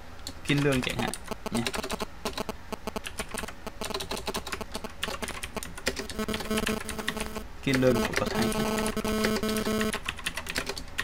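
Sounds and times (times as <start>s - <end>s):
computer keyboard typing: 0.2s - 11.0s.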